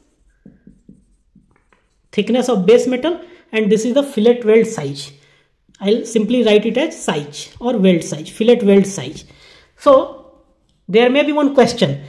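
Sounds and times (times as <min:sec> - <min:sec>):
marker pen writing on whiteboard: 0:00.0 - 0:02.4.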